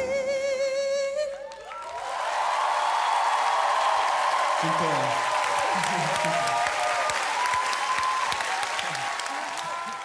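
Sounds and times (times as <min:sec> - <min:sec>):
audience applauding: 0:01.5 - 0:10.0
voices cheering: 0:01.5 - 0:10.0.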